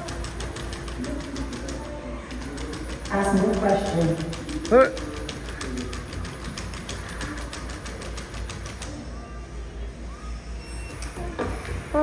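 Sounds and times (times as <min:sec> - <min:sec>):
robot dog feet ticking: 0:00.0 - 0:09.0.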